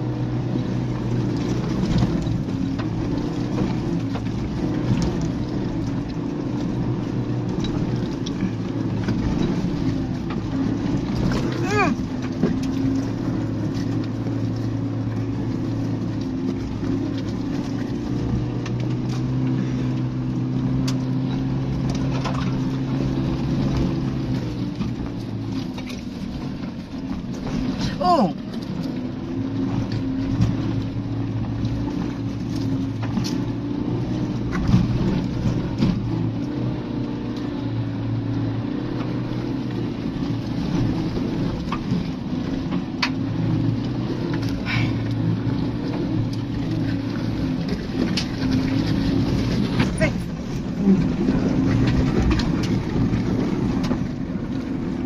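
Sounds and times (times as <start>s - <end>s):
car engine running: 0.0s - 55.0s
car body knocking and rattling: 0.8s - 36.6s, 38.9s - 55.0s.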